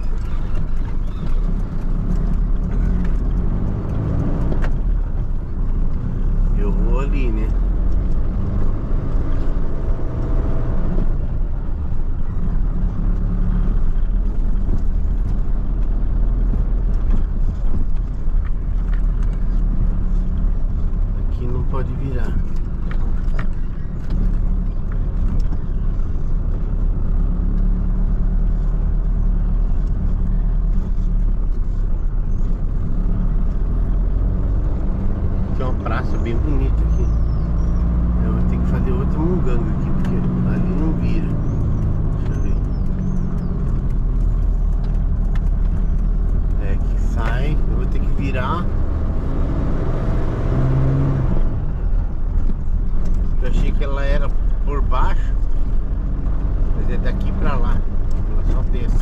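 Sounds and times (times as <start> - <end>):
van diesel engine and road noise: 0.0 - 59.0.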